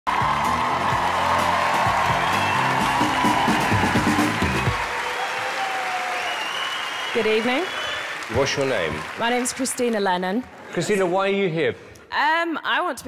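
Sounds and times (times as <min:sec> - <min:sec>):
show music: 0:00.1 - 0:05.9
audience applause: 0:00.1 - 0:11.6.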